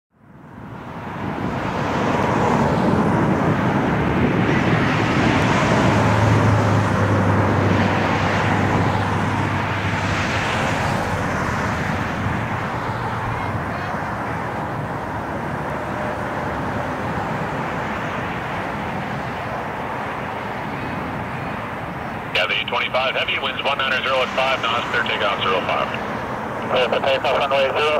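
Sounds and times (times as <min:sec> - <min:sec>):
jet engine rushing: 0:00.6 - 0:27.9.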